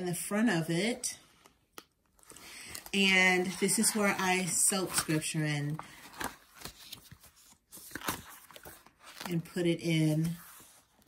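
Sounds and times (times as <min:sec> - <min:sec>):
paper rustling: 0:02.2 - 0:09.4.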